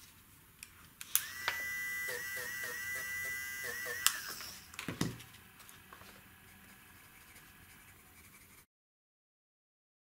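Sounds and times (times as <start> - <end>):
electric eraser whining: 1.1 - 8.4.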